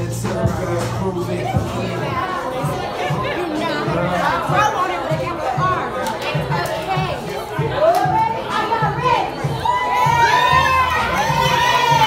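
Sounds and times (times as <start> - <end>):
music with steady beat: 0.0 - 12.0
women shouting and cheering: 1.4 - 12.0.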